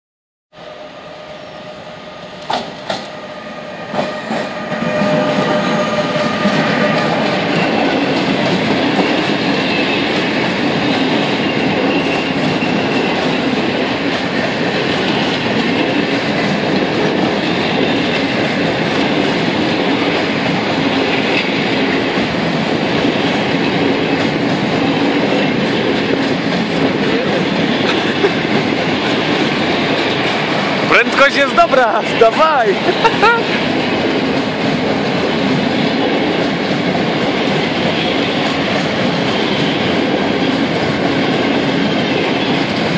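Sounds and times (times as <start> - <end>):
electric locomotive passing: 0.6 - 42.9
train wheels clattering on rails: 2.4 - 3.2, 3.9 - 42.9.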